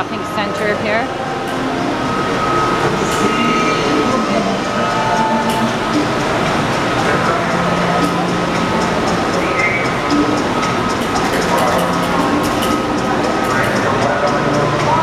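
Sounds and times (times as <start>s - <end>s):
faint steady high tone: 0.0s - 12.4s
background music: 0.0s - 15.0s
indistinct voices: 0.0s - 15.0s.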